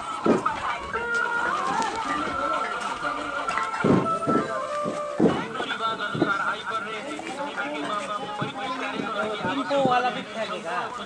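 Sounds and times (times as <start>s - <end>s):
dull thump: 0.2s - 1.0s, 1.8s - 6.8s, 8.2s - 10.3s.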